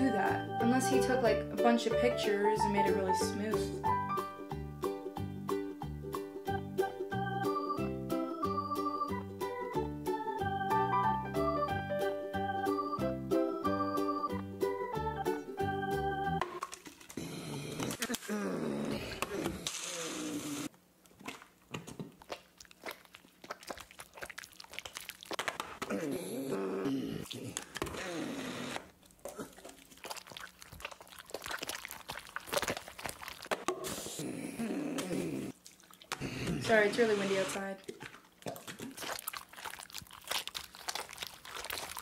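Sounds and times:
keyboard music jingle: 0.0s - 16.4s
short vocal noises: 33.7s - 35.6s.

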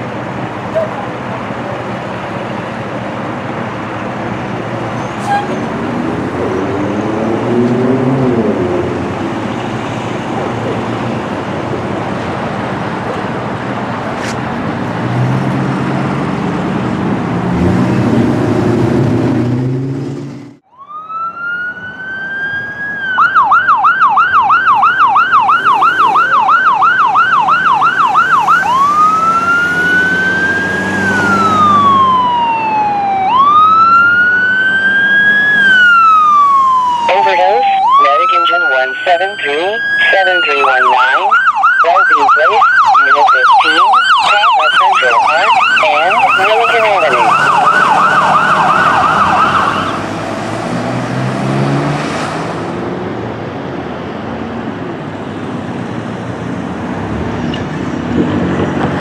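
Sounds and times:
ambulance siren: 20.6s - 50.8s.

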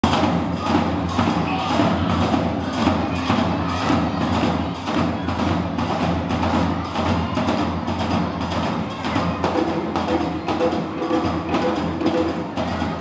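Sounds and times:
clattering percussion rhythm: 0.0s - 13.0s
drum: 0.0s - 13.0s.

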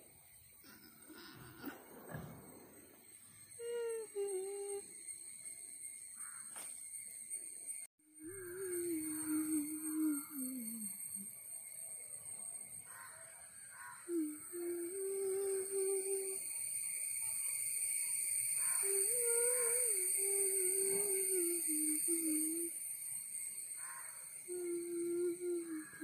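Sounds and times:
person humming: 3.6s - 4.8s, 8.2s - 11.3s, 14.1s - 16.4s, 18.8s - 22.8s, 24.5s - 26.0s
high-pitched background tones: 8.2s - 11.3s.

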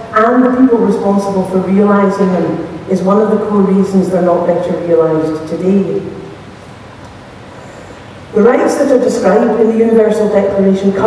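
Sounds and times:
speaker's voice: 0.0s - 6.3s, 8.3s - 11.0s
hall background noise: 0.0s - 11.0s.

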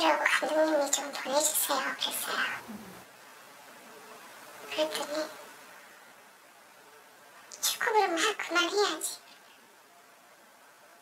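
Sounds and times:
faint room hiss: 0.0s - 11.0s
person speaking: 1.2s - 3.0s.

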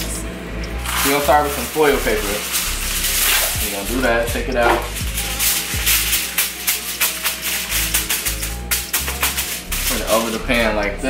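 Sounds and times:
background music with bass line: 0.0s - 11.0s
aluminium foil crumpling: 0.8s - 4.0s, 4.7s - 10.4s.

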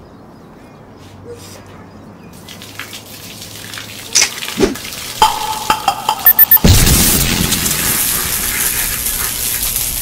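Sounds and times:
garden hose spraying water: 2.3s - 5.7s, 6.8s - 10.0s
water spattering on surfaces: 2.3s - 10.0s.

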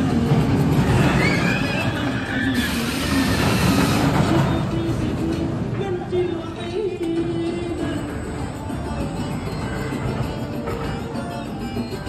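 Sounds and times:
background music: 0.0s - 12.0s
roller coaster rumbling on track: 0.0s - 12.0s.

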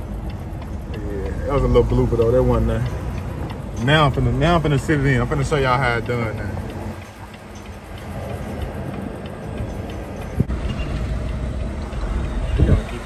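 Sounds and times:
diesel truck engine running: 0.0s - 13.0s.

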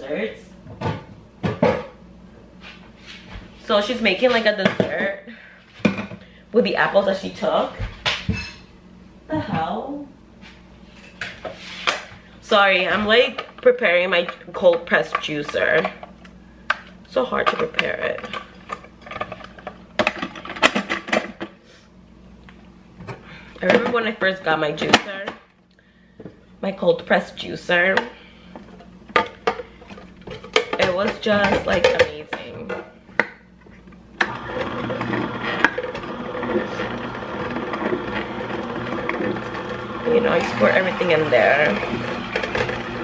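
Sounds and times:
juicer motor humming: 28.7s - 43.0s.

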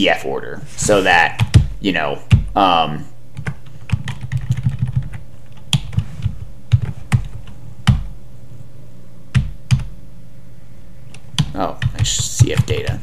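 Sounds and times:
computer keyboard key presses: 3.4s - 6.0s.

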